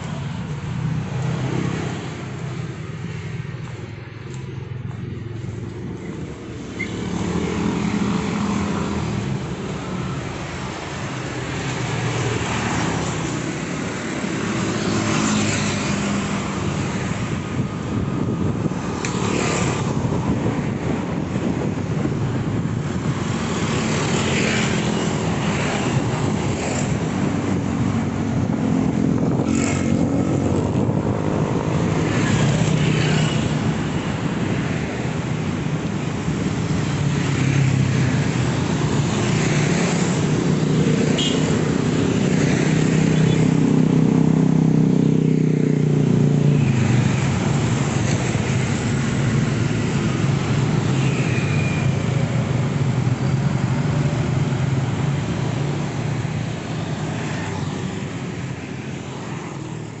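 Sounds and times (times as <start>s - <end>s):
cars passing: 0.0s - 60.0s
motor scooters passing: 4.6s - 60.0s.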